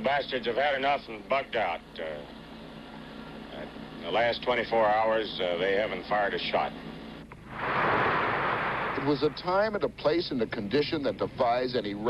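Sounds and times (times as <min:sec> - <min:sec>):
loud steady rushing noise: 0:07.4 - 0:09.8.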